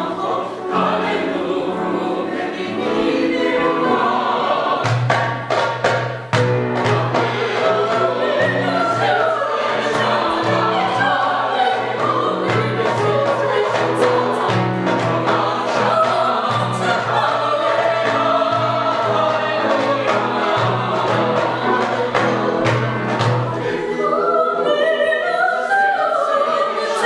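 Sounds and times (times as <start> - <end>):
mixed choir singing: 0.0 - 5.4, 6.8 - 27.0.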